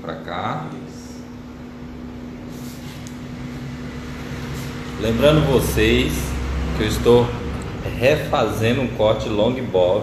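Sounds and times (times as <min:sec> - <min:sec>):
mechanical room hum: 0:00.0 - 0:10.0.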